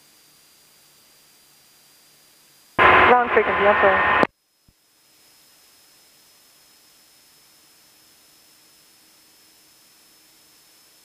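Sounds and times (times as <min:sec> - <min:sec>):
intercom hiss: 0:02.8 - 0:04.3
radio transmission speech: 0:02.8 - 0:04.3.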